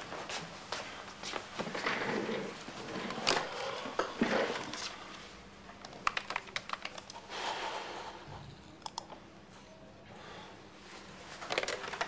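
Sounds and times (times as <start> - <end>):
computer keyboard typing: 5.8 - 7.3.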